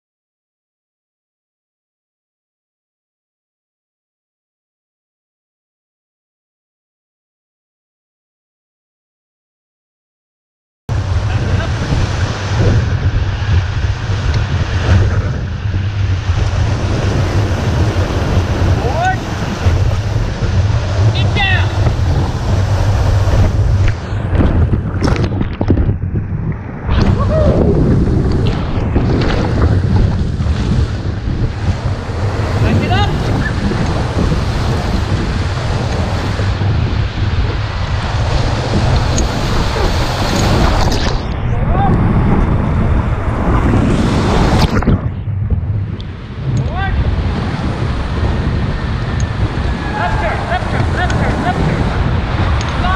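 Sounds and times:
whitewater rapid rushing: 10.9 - 15.1, 15.8 - 24.4, 26.9 - 41.7, 46.2 - 52.9
low rumble: 10.9 - 52.9
wind buffeting microphone: 10.9 - 52.9
rushing whitewater rapids: 16.6 - 23.6, 49.4 - 52.9
people shouting: 49.7 - 51.7.

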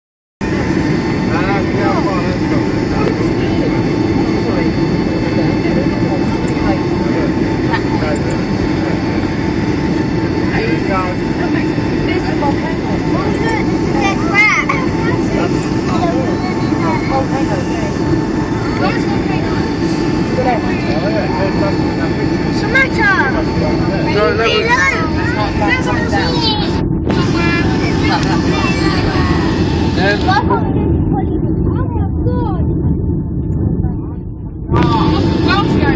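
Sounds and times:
jet airliner cabin roar: 0.4 - 35.9.

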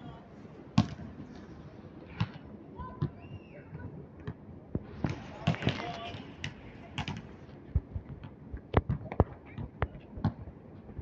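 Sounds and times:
people talking: 2.6 - 4.1, 5.1 - 7.2.

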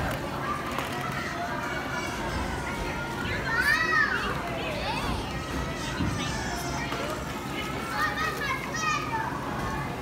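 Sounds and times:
many children playing: 0.0 - 10.0
young children calling and chattering: 0.0 - 10.0.

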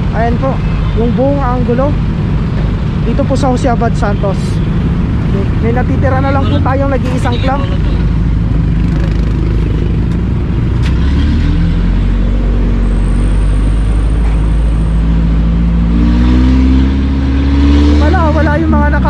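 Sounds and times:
road noise: 0.0 - 19.0
truck engine: 0.0 - 19.0.

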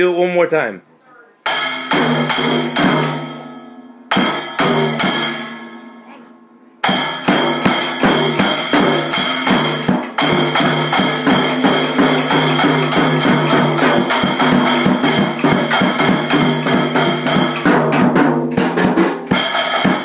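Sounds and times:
drum hits: 1.5 - 5.9, 6.8 - 20.0.

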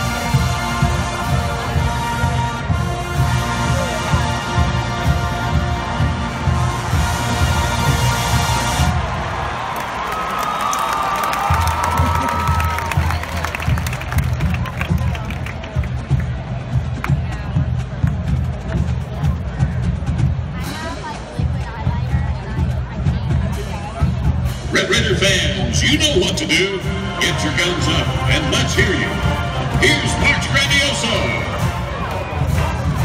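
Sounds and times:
marching band holding chord: 0.0 - 9.6, 11.5 - 33.0
stadium crowd cheering: 0.0 - 33.0.

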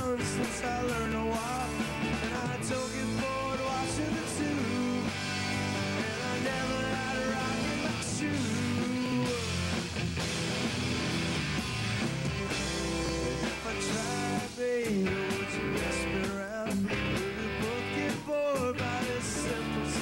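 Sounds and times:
man singing: 0.0 - 9.7, 12.5 - 20.0
bass guitar: 0.0 - 20.0
drums: 0.0 - 20.0
electric guitars: 0.0 - 20.0.

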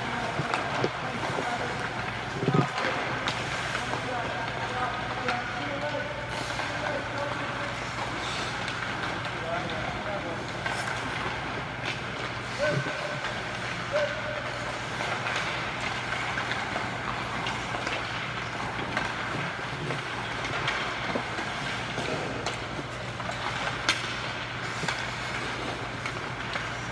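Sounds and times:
skate blades scraping ice: 0.0 - 26.9
steady low hum: 0.0 - 26.9
sticks hitting pucks: 0.0 - 26.9.

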